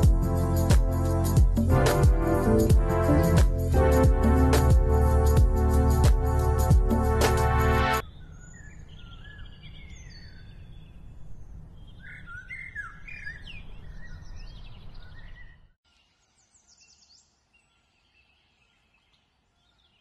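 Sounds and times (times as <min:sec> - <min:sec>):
birds chirping: 0:08.0 - 0:20.0.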